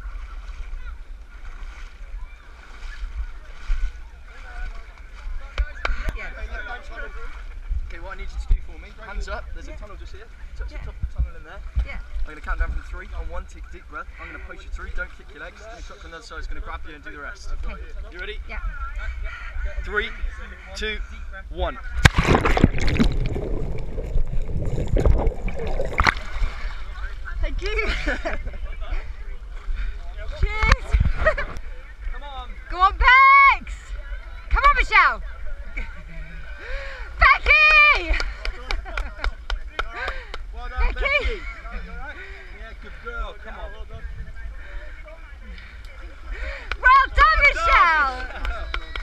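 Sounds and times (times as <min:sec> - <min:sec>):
wind rumble on microphone: 0:07.2 - 0:08.8, 0:10.4 - 0:13.4, 0:21.9 - 0:27.6, 0:28.3 - 0:32.4, 0:43.7 - 0:44.9
water sloshing: 0:21.9 - 0:28.3.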